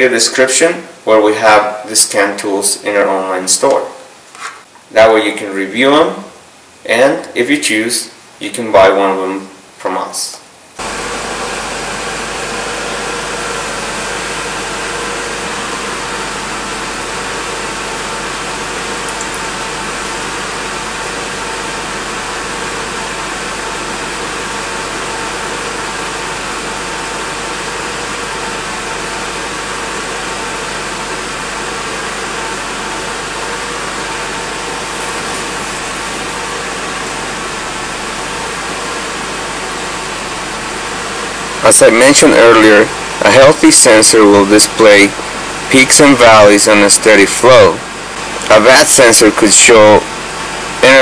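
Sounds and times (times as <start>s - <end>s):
car engine idling: 10.8s - 51.0s.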